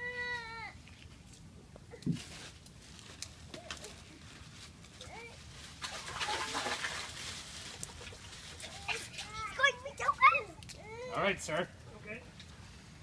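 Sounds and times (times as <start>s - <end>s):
ice and water splashing into tub: 5.7s - 9.6s.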